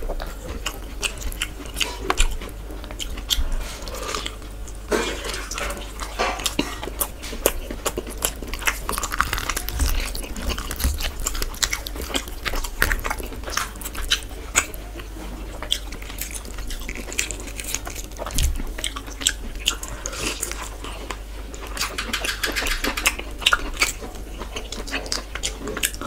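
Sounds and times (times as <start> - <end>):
close chewing and biting: 0.0 - 26.0.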